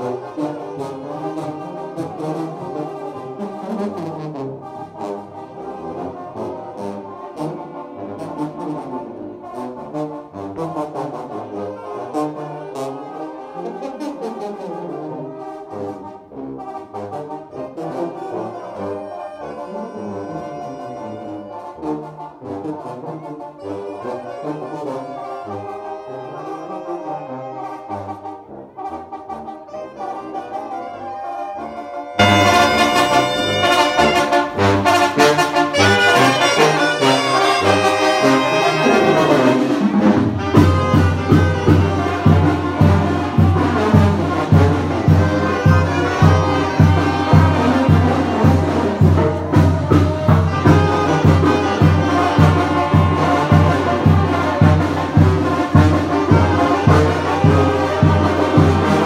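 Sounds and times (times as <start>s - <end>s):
brass band playing dance tune: 0.0s - 59.0s.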